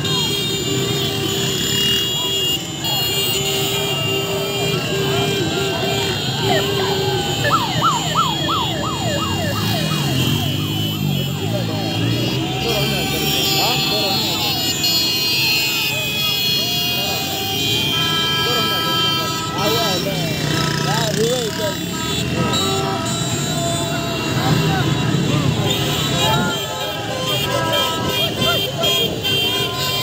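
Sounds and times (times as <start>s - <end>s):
car engines: 0.0s - 30.0s
crowd shouting: 0.0s - 30.0s
siren-style car horn wailing: 0.0s - 30.0s
steady car horn blast: 9.6s - 30.0s.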